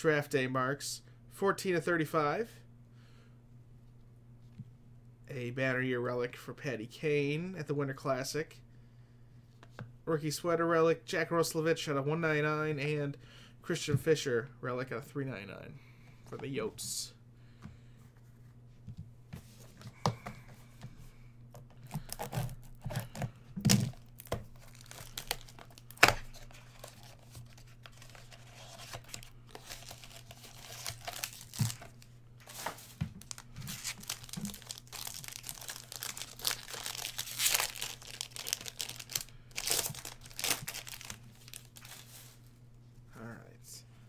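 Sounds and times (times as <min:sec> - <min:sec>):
foil wrappers tearing and crinkling: 0:21.8 - 0:42.1.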